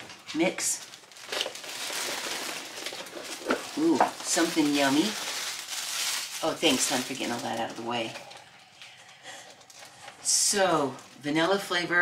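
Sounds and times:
packaging rustling and crinkling: 0:00.0 - 0:10.2.

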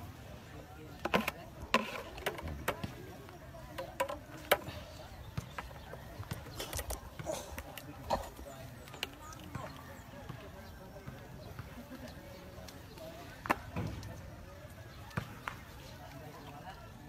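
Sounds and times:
faint indistinct voices: 0:00.0 - 0:17.0.

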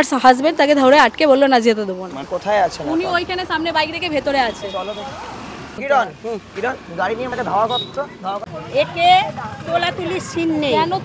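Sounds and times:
street traffic noise: 0:00.0 - 0:11.0
voices talking: 0:00.0 - 0:11.0.

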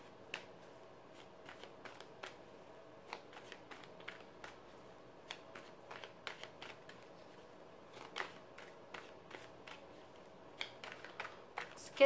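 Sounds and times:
cards being shuffled: 0:00.2 - 0:02.4, 0:03.0 - 0:12.0.

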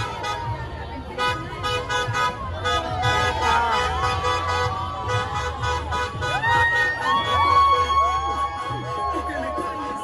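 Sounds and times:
car horns honking: 0:00.0 - 0:10.0
crowd shouting: 0:00.0 - 0:10.0
traffic noise: 0:00.0 - 0:10.0.

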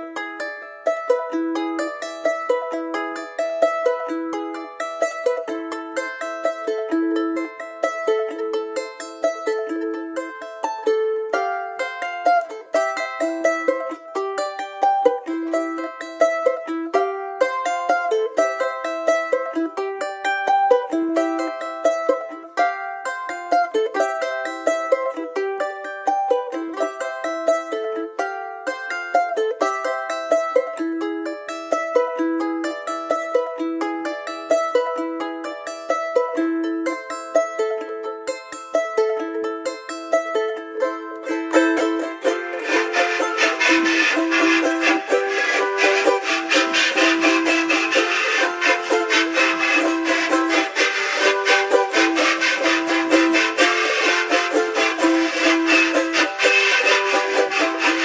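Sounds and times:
high plucked string instrument: 0:00.0 - 0:58.0.

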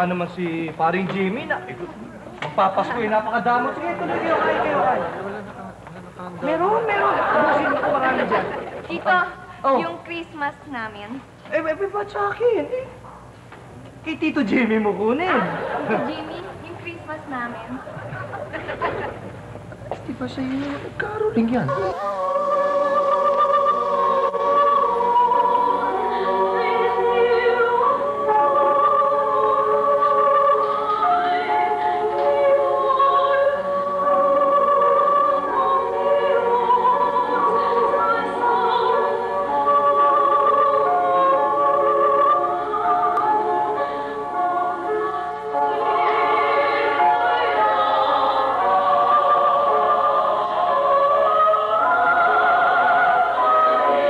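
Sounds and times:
mixed choir singing: 0:02.7 - 0:05.4, 0:06.4 - 0:08.9, 0:21.0 - 0:54.0.

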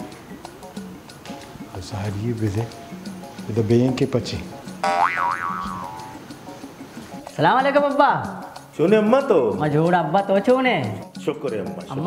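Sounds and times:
cartoon boing sound effect: 0:04.8 - 0:06.2.

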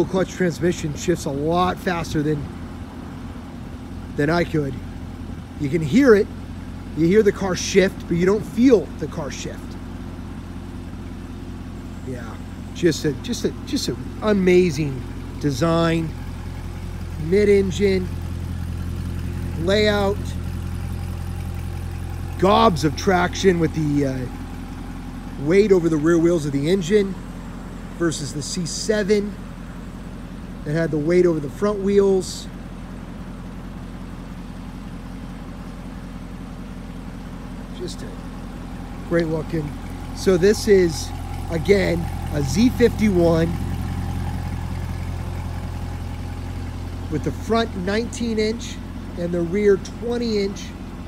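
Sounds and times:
car engine idling: 0:00.0 - 0:51.0.

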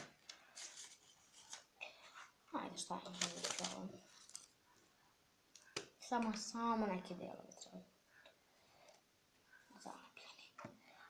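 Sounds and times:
person whispering faintly: 0:09.6 - 0:11.0.

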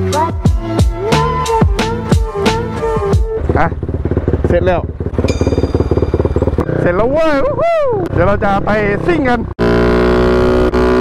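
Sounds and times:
background music: 0:00.0 - 0:03.8
motorcycle engine idling: 0:02.1 - 0:07.4.

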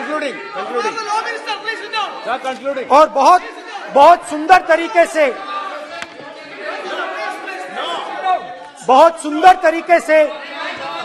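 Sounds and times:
murmur of chatter in a hall: 0:00.0 - 0:11.0.

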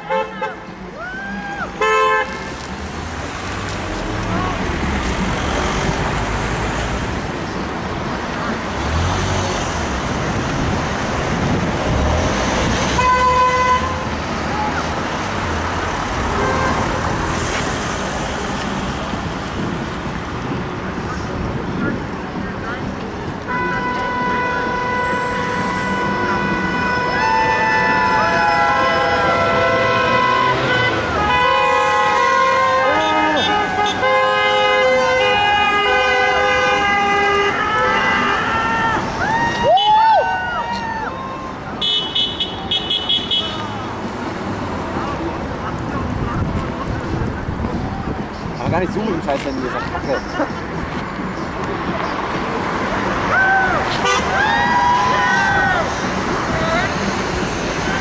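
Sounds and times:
long car horn blasts: 0:00.0 - 0:00.7, 0:01.8 - 0:02.5, 0:12.9 - 0:14.1, 0:16.3 - 0:17.0, 0:23.5 - 0:38.8, 0:41.8 - 0:43.7, 0:54.0 - 0:54.4
passing road traffic: 0:00.0 - 0:58.0.

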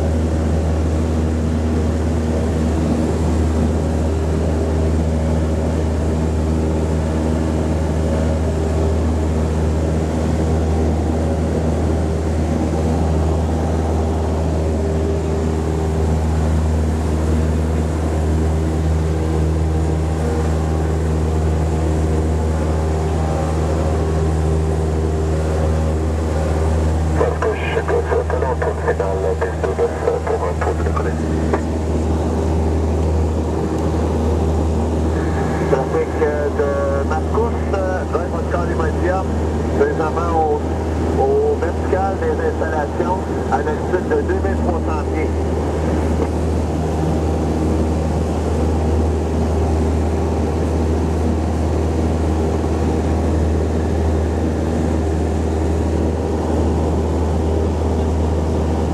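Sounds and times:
light aircraft engine droning: 0:00.0 - 0:58.9
person talking: 0:27.2 - 0:31.3.

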